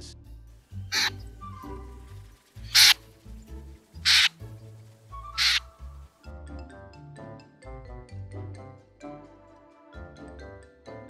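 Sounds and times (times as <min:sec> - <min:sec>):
snipe harsh flush call: 0:00.9 - 0:01.1, 0:02.6 - 0:03.0, 0:04.0 - 0:04.4, 0:05.4 - 0:05.6.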